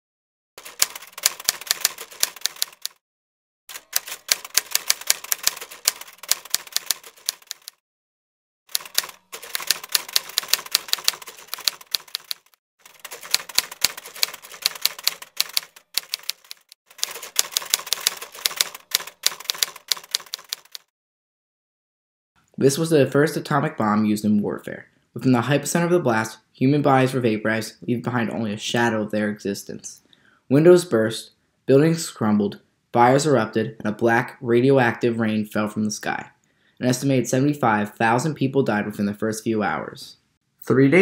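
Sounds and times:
typewriter keys clacking: 0:00.6 - 0:03.0, 0:03.7 - 0:07.8, 0:08.7 - 0:20.9.

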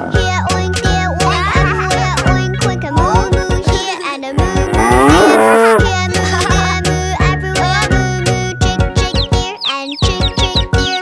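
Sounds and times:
children's song backing music: 0:00.0 - 0:11.0
cow mooing: 0:04.4 - 0:05.9.

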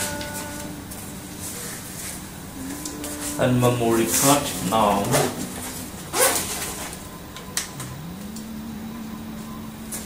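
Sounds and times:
faint low hum: 0:00.0 - 0:10.0
nylon backpack rustling: 0:05.1 - 0:07.1.

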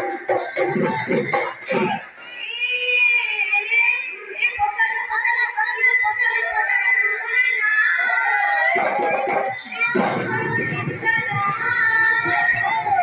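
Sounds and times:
women singing over pa: 0:04.4 - 0:13.0.

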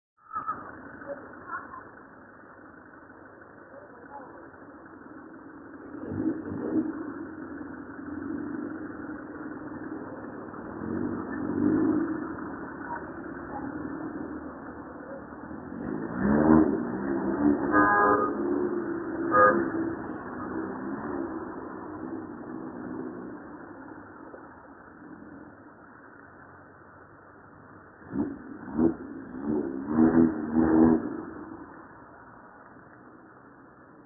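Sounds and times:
harsh engine sounds: 0:00.2 - 0:34.0
car engine accelerating: 0:00.4 - 0:26.8, 0:27.5 - 0:34.0.

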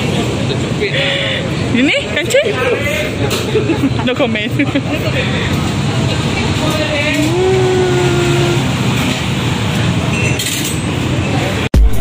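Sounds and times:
street traffic engine hum: 0:00.0 - 0:12.0.

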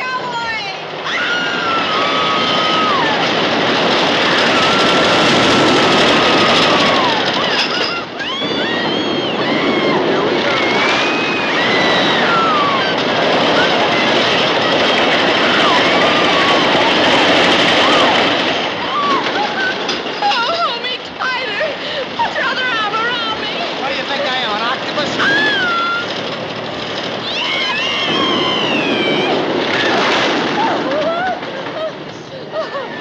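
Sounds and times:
riders screaming: 0:00.0 - 0:33.0
roller coaster cars rattling: 0:00.0 - 0:33.0.

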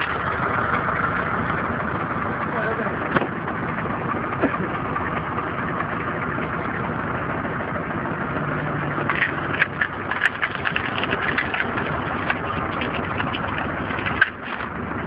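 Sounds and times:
wood cracking and splitting: 0:00.0 - 0:01.3, 0:08.8 - 0:15.0
log splitter engine running: 0:00.0 - 0:15.0.

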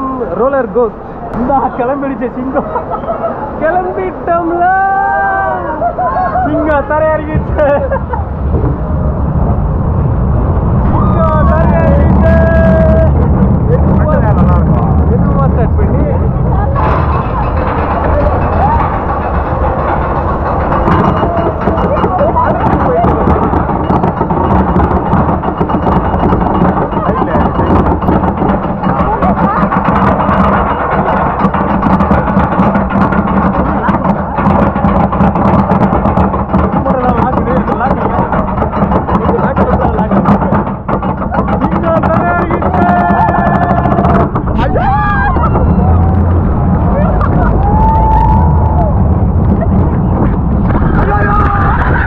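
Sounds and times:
roller coaster cars clattering: 0:00.0 - 0:52.0
rushing air: 0:07.4 - 0:26.4, 0:43.2 - 0:52.0
riders screaming: 0:47.1 - 0:49.0, 0:50.7 - 0:52.0.

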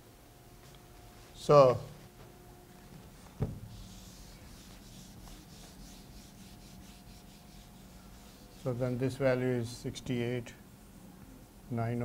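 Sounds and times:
eraser scrubbing a whiteboard: 0:03.2 - 0:09.2.

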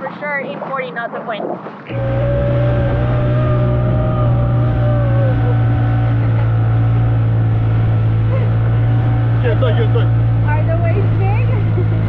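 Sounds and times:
outboard motor drone: 0:00.0 - 0:12.0
man holding a long note: 0:01.9 - 0:07.4.

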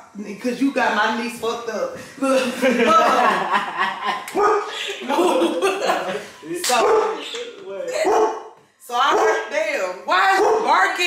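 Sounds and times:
women's voices: 0:00.0 - 0:03.0, 0:08.8 - 0:11.0
laughter: 0:02.4 - 0:06.3
dog barking: 0:04.4 - 0:04.8, 0:06.7 - 0:07.2, 0:08.0 - 0:08.5, 0:09.1 - 0:09.5, 0:10.3 - 0:10.9.

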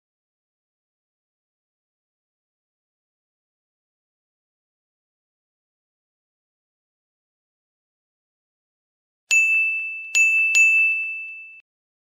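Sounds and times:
bright bell-like chime dings: 0:09.3 - 0:11.7.

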